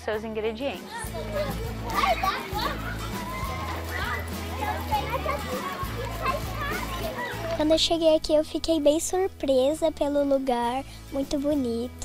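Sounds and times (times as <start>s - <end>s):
background music: 0.0s - 12.0s
children chattering and calling: 0.7s - 11.9s.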